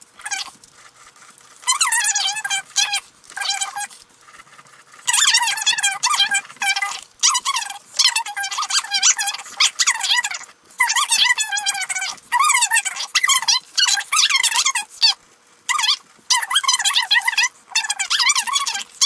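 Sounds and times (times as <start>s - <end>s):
gel pen squeaking on paper: 0.2s - 19.0s.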